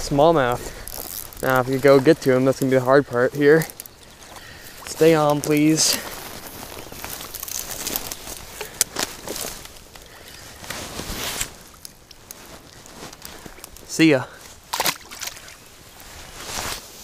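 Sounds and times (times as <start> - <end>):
rustling through dry grass: 0.0 - 17.0
clothing rubbing against camera: 10.4 - 13.5, 16.0 - 17.0.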